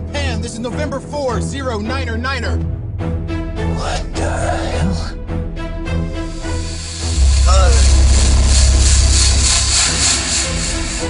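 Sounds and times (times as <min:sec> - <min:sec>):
pulsing rushing air: 0:06.0 - 0:11.0
aircraft low rumble: 0:06.1 - 0:11.0.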